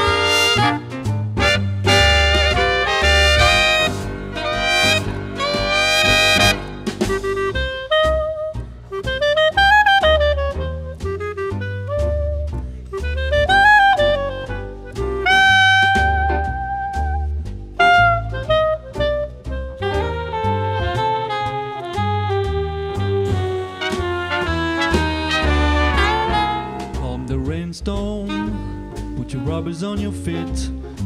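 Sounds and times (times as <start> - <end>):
horn melody with bent notes: 0.0 - 30.4
swing band playing live: 0.0 - 31.0
walking bass: 0.0 - 31.0.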